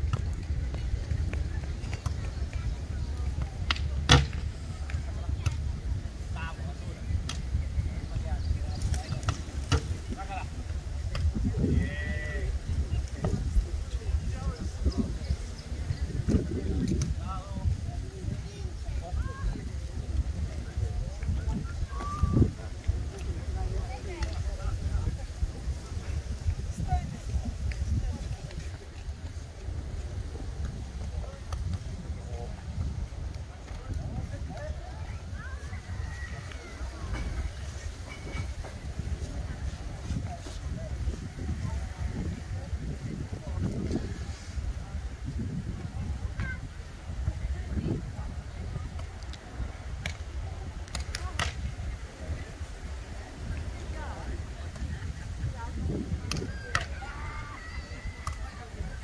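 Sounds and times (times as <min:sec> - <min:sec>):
faint distant voices: 0:00.0 - 0:59.0
wind rumbling on microphone: 0:00.0 - 0:59.0.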